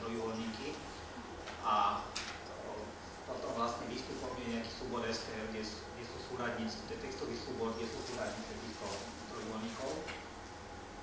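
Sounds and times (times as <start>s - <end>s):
man talking: 0.0s - 0.8s, 1.6s - 10.2s.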